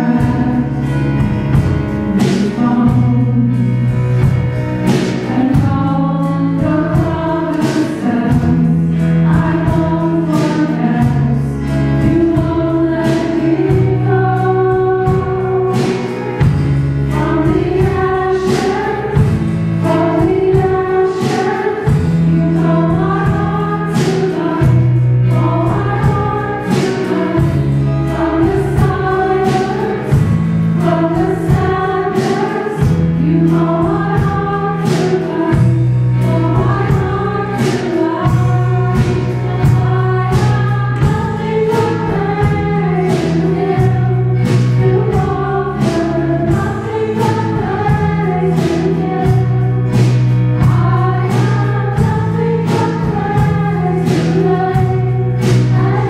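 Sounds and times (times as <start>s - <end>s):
choir singing with guitars: 0.0s - 56.0s.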